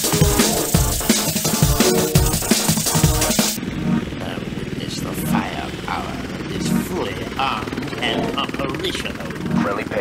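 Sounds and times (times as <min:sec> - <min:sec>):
low rumbling drone: 0:03.6 - 0:10.0.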